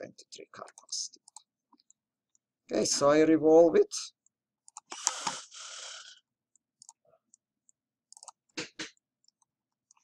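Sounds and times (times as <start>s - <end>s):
computer mouse clicks: 4.6s - 5.4s, 6.5s - 10.0s.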